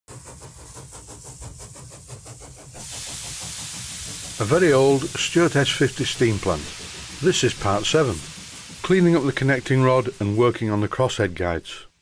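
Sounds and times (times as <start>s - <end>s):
steam engine beat: 0.1s - 11.6s
loud hiss of escaping steam: 0.1s - 12.0s.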